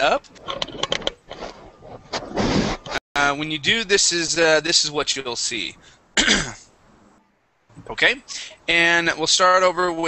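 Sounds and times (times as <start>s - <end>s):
man clearing throat: 6.2s - 6.7s.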